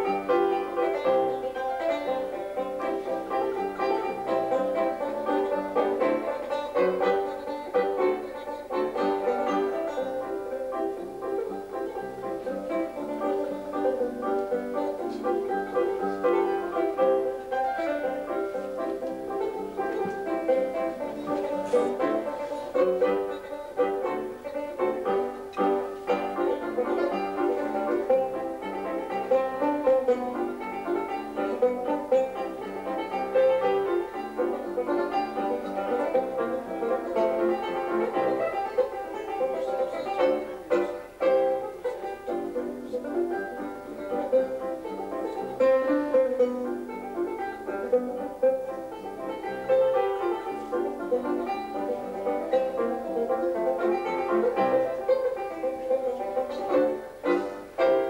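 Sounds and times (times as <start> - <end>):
fingerpicked banjo: 0.0 - 58.0
piano: 0.0 - 58.0.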